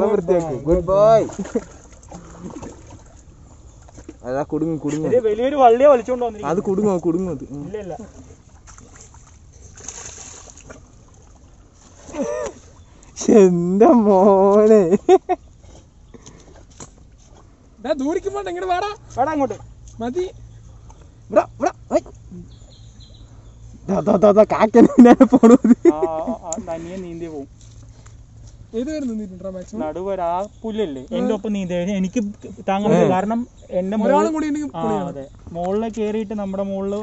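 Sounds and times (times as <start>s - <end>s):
faint water sloshing: 0.0s - 37.0s.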